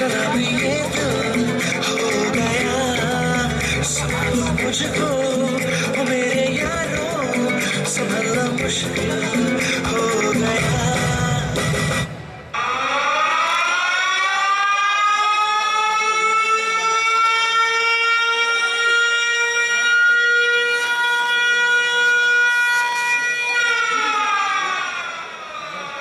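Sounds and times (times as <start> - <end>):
air-raid siren wailing: 12.5 - 26.0.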